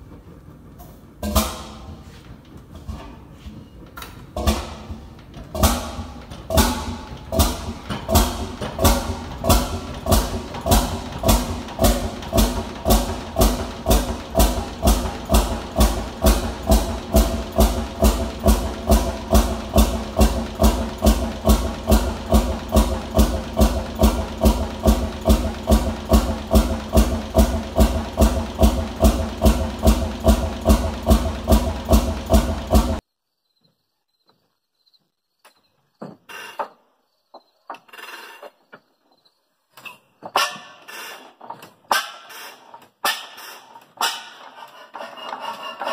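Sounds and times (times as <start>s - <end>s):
stationary engine exhaust beats: 0.0s - 33.0s.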